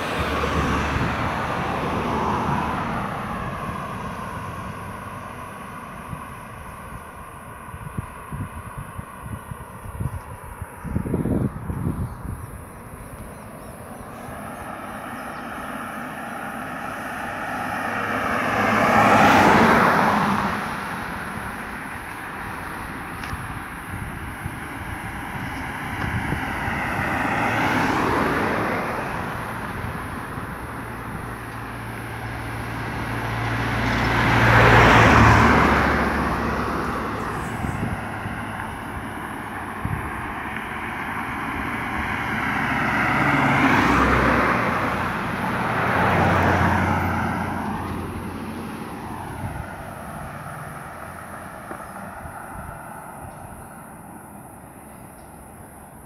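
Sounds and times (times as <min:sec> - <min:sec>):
cars passing on asphalt road: 0:00.0 - 0:56.0.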